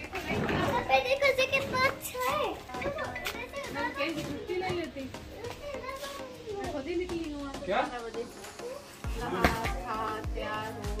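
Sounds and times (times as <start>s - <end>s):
children's voices chattering: 0.0s - 7.1s.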